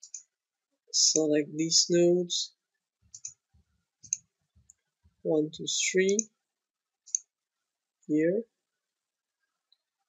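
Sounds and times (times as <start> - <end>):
computer mouse clicks: 0.0 - 0.3, 3.1 - 3.4, 4.0 - 4.8, 7.1 - 7.3.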